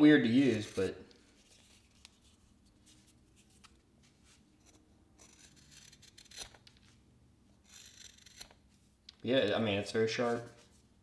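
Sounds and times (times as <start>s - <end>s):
knife carving wood: 0.0s - 8.8s.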